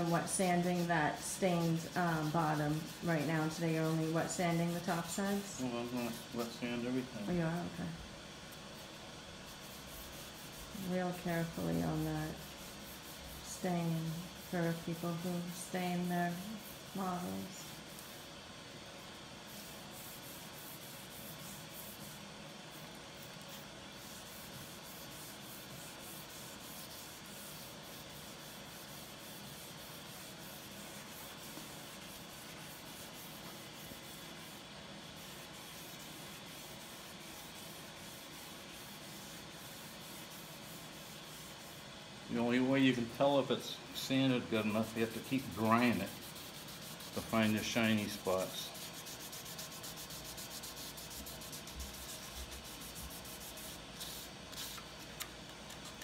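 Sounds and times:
wet sandpaper rubbing on wood: 0.0 - 6.6, 9.4 - 18.2, 19.5 - 22.9, 23.6 - 41.8, 44.5 - 54.9.

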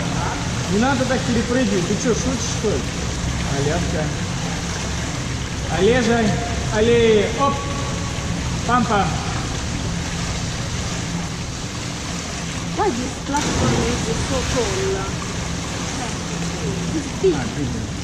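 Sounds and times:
water running and lapping: 0.0 - 18.0.

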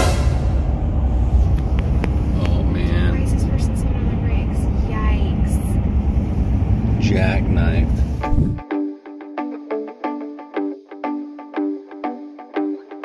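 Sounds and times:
car road and engine rumble: 0.0 - 8.6.

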